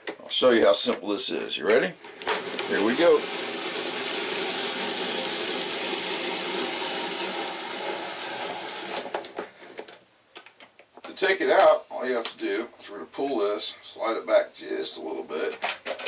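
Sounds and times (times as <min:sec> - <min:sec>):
apple corer grinding and scraping: 0:02.0 - 0:09.5.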